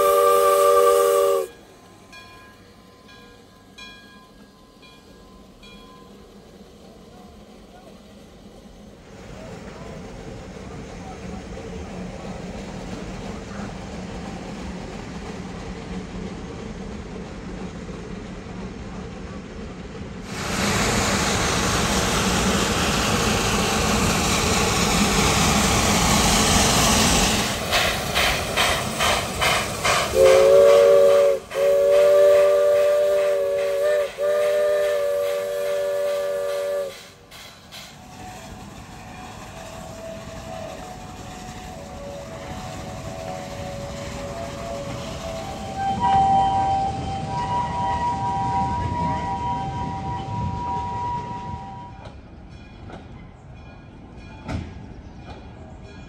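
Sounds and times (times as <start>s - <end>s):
steam hissing: 0.0s - 1.6s, 20.2s - 51.9s
steam whistle chord: 0.0s - 1.6s, 30.1s - 37.2s, 39.9s - 52.1s
locomotive exhaust chuffs: 20.3s - 52.1s.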